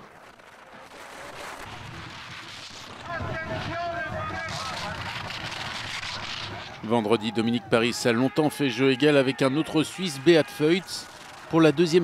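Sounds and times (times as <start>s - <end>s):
crowd cheering: 3.0s - 12.0s.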